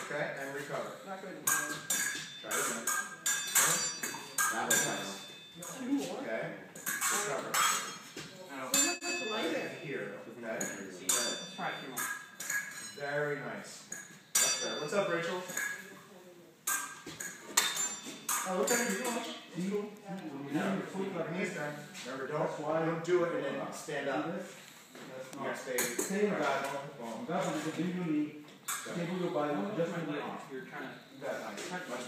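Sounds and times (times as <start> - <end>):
sword blades clashing and scraping: 1.5 - 5.8.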